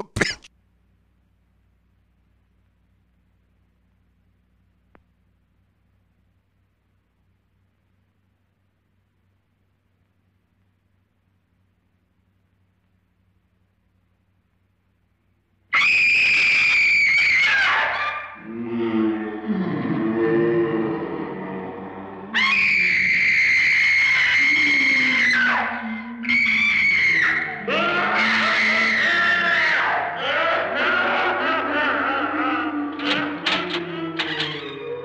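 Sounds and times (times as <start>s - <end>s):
ghostly moans: 18.4s - 35.0s
woman screaming: 22.2s - 32.8s.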